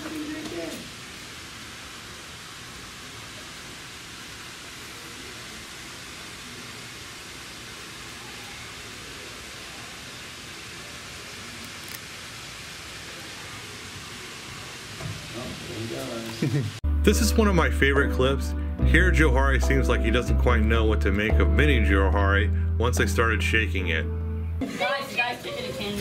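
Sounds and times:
steady hiss: 0.0s - 17.6s.

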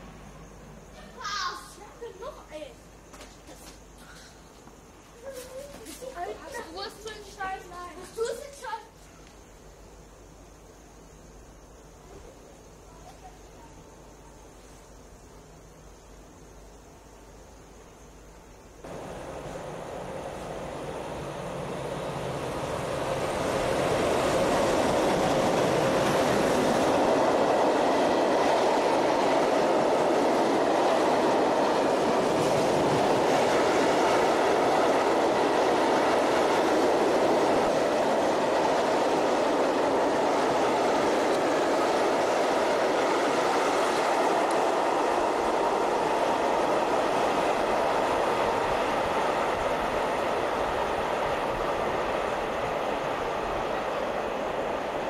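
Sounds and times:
freight train wheels on rails: 0.0s - 10.0s, 18.4s - 55.0s.

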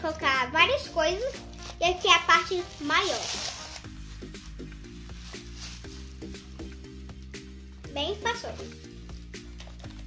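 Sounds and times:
soft background music: 0.0s - 10.0s
tissue paper rustling: 0.9s - 7.0s.

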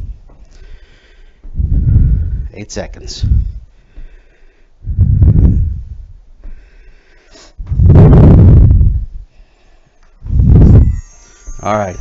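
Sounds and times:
hard breathing into microphone: 0.0s - 2.5s, 3.2s - 10.8s.

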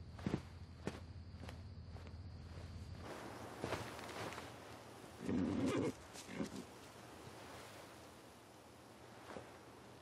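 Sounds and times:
horse snorting: 5.2s - 6.7s.

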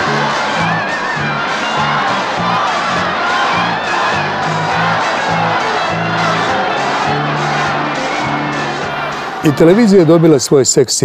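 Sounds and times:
crowd shouting and cheering: 0.0s - 11.0s.

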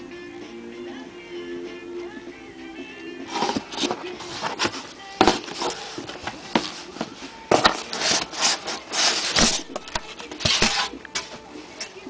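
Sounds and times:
cardboard box being opened: 3.3s - 10.9s.

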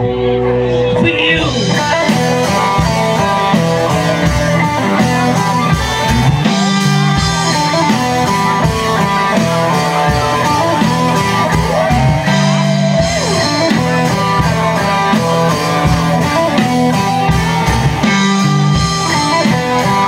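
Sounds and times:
lead guitar bending notes: 0.0s - 20.0s
rock band playing: 0.0s - 20.0s
steady drums: 0.0s - 20.0s.

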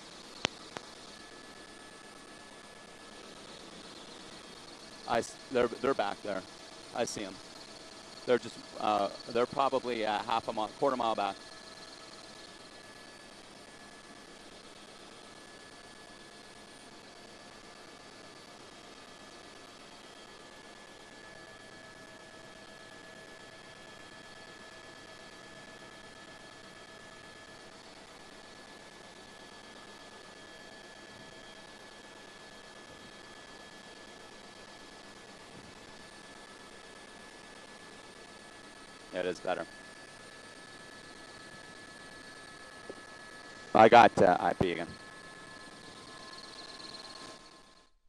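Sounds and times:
thin steady tones: 0.0s - 26.0s, 26.7s - 47.9s
broadcast line hiss: 43.7s - 45.0s.

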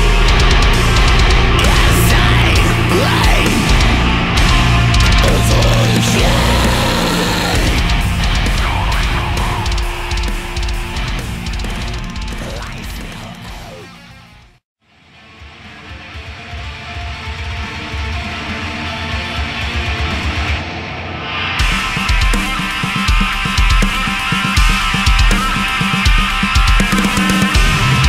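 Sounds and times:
full band with drums: 0.0s - 13.9s, 15.4s - 28.0s
heavy metal guitar riffs: 0.0s - 14.4s, 15.1s - 28.0s.

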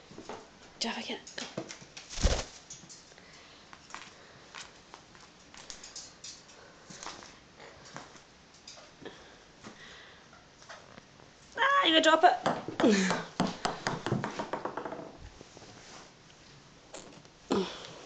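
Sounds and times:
parrot scuffling and hopping: 1.5s - 3.0s
ball taps and clicks: 12.4s - 15.2s.

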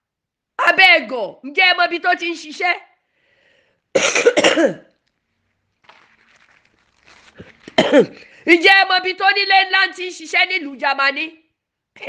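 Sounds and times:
person coughing: 4.0s - 5.0s, 7.4s - 8.4s.

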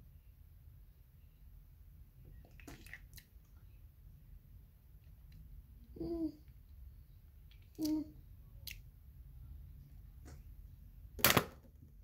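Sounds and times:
girl vocal sounds: 7.7s - 8.2s.

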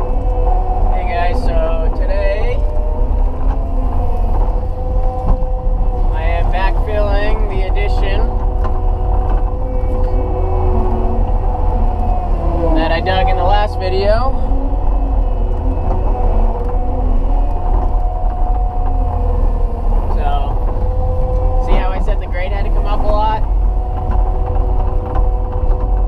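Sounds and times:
hydraulic whining tones: 0.0s - 26.0s
loader engine low drone: 0.0s - 26.0s.

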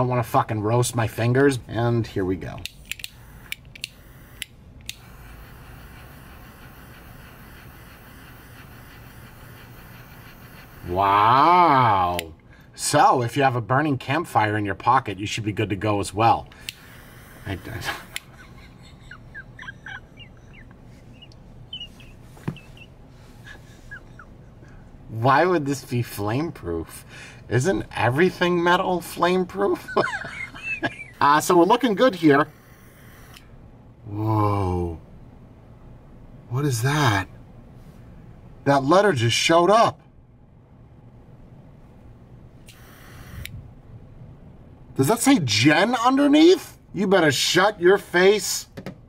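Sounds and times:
sharp click: 2.6s - 5.0s
soft hiss: 2.7s - 12.8s, 41.5s - 45.6s
faint animal-like chirps: 17.6s - 24.3s.

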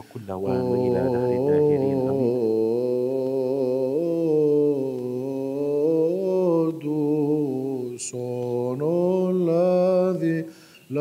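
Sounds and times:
man chanting a hymn: 0.0s - 11.0s.

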